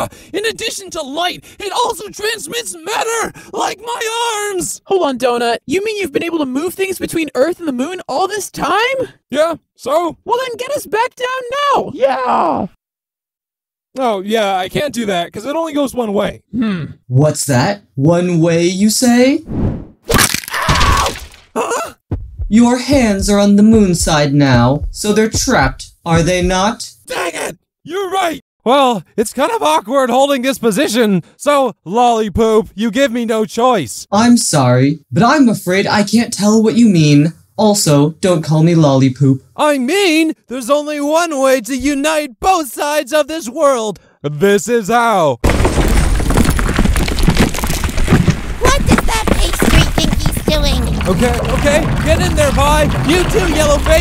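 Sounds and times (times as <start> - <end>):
crackling cartoon burst: 45.4 - 54.0
low rumble: 50.7 - 54.0.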